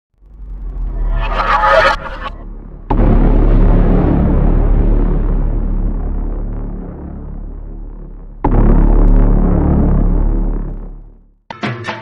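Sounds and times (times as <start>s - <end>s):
rising whoosh: 0.2s - 3.9s
boom with low rumbling drone: 0.2s - 11.3s.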